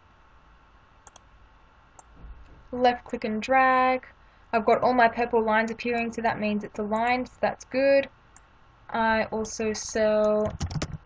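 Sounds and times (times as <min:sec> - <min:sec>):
computer mouse clicks: 0:01.0 - 0:01.3, 0:02.0 - 0:02.2, 0:10.2 - 0:11.0.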